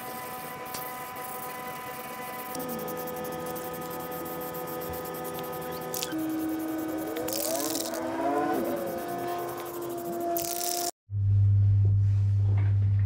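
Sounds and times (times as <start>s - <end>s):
loud low hum: 1.0s - 13.0s.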